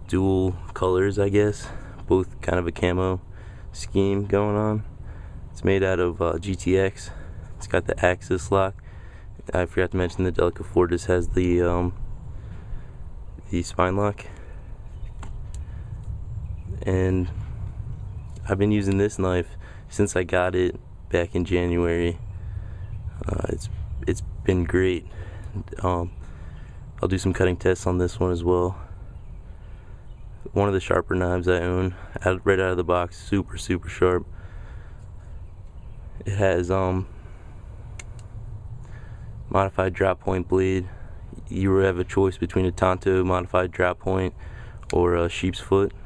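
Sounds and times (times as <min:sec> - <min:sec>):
low background rumble: 0:00.0 - 0:46.0
steady low hum: 0:00.0 - 0:46.0
faint clicks: 0:37.9 - 0:38.3.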